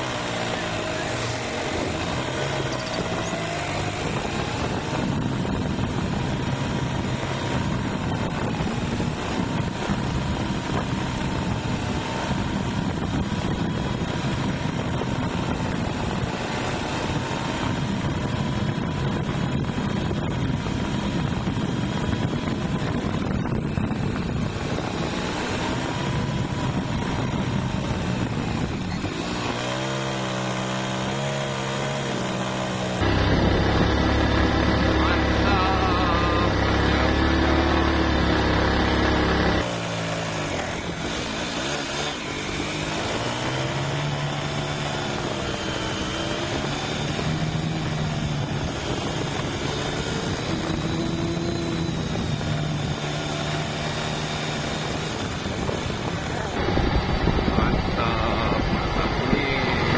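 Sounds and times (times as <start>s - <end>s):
vehicle engine revving: 0.0s - 59.9s.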